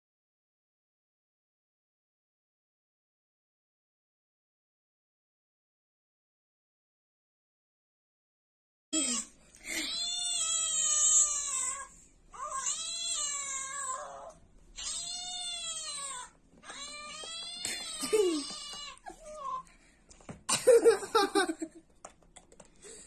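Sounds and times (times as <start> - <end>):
cat yowling: 9.8 - 19.7.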